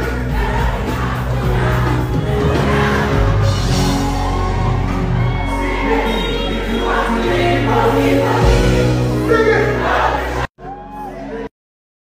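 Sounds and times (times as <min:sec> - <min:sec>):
steady bass line: 0:00.0 - 0:10.2
live afrobeat band: 0:00.0 - 0:10.4
many voices singing: 0:00.0 - 0:10.5.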